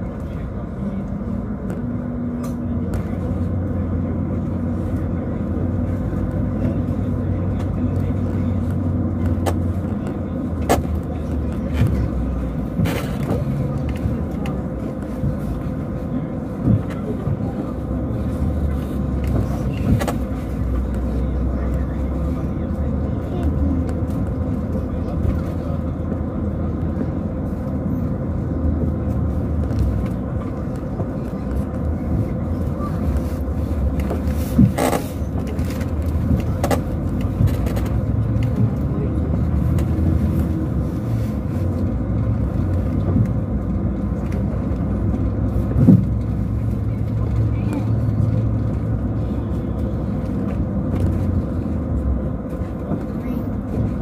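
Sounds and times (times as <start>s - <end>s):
bus engine and road rumble: 0.0s - 54.0s.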